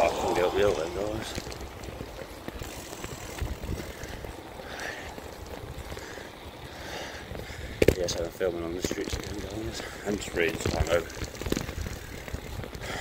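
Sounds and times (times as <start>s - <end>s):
wind buffeting microphone: 0.0s - 13.0s.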